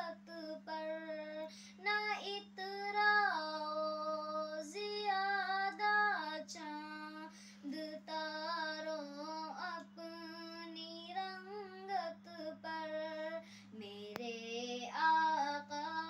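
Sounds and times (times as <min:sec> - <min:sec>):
girl singing unaccompanied: 0:00.0 - 0:16.0
steady low hum: 0:00.0 - 0:16.0.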